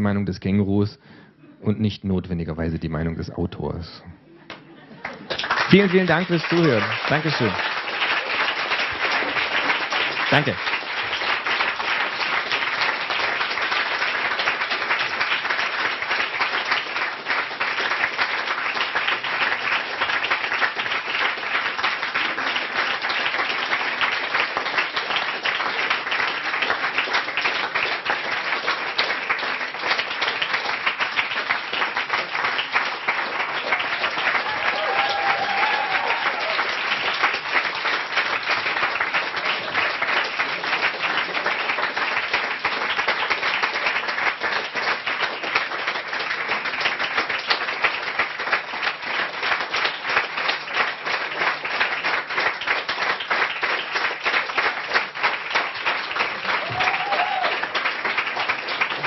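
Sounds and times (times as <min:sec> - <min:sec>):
audience applauding: 0:04.5 - 0:59.0.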